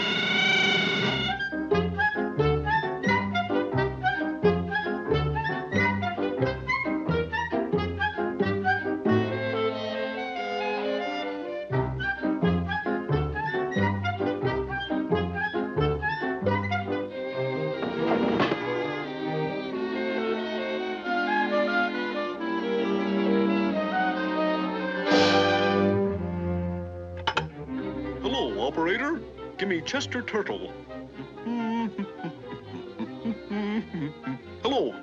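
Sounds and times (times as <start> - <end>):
orchestral cartoon music: 0.0 - 35.0.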